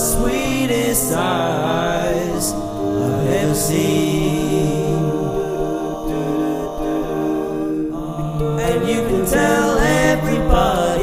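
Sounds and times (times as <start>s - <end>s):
a cappella vocal harmony: 0.0s - 11.0s
moving vocal line: 1.0s - 11.0s.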